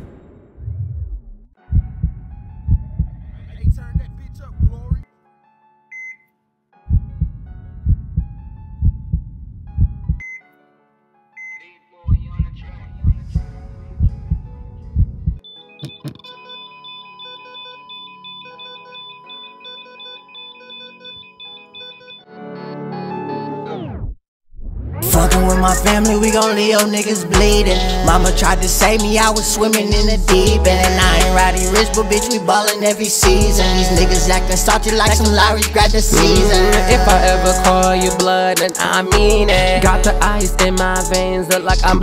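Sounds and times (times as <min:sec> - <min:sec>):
heartbeat thumps: 0:00.8 - 0:05.0, 0:06.9 - 0:10.2, 0:12.1 - 0:15.4, 0:35.0 - 0:37.8, 0:39.1 - 0:41.0
short monitor beeps: 0:05.9 - 0:06.3, 0:10.2 - 0:10.5, 0:11.4 - 0:11.7, 0:15.4 - 0:22.2
flatline tone: 0:15.4 - 0:22.2
high synth melody: 0:15.4 - 0:23.7, 0:30.6 - 0:42.0.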